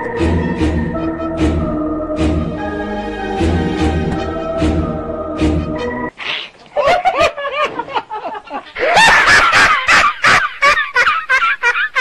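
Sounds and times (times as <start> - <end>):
dramatic music with low drum beats: 0.0 - 6.1.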